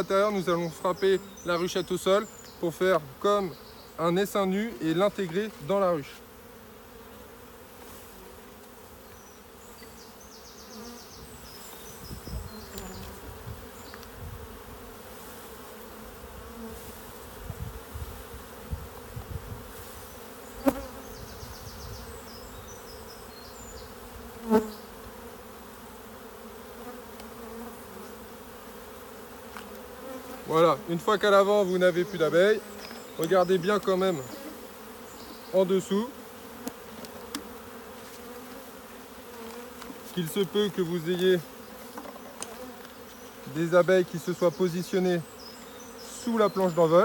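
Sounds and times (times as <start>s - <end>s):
honeybees buzzing: 0.0s - 47.0s.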